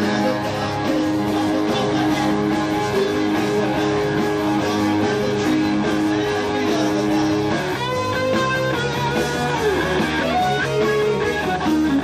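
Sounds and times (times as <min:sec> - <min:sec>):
electric guitar holding long notes: 0:00.0 - 0:12.0
live rock band playing: 0:00.0 - 0:12.0.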